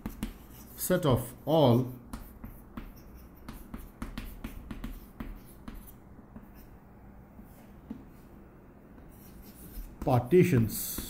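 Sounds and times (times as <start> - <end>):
chalk writing on chalkboard: 0.0 - 1.0, 2.1 - 6.8, 8.9 - 11.0.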